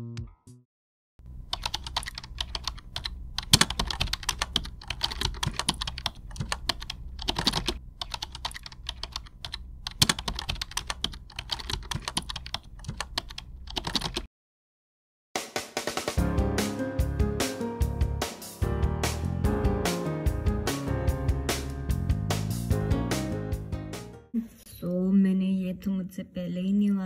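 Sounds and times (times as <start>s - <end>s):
laptop keyboard typing: 1.5s - 14.3s.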